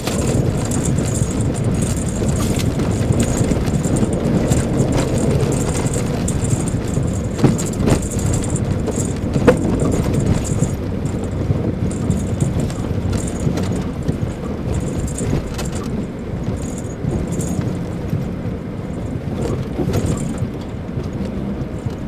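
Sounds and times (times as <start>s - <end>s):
high-pitched jangling rattle: 0.0s - 20.6s
engine and tyre rumble: 0.0s - 22.0s.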